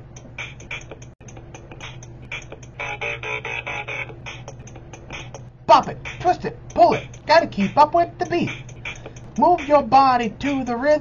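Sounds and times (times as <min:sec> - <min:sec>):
electronic beat of short hits: 0:00.0 - 0:10.8.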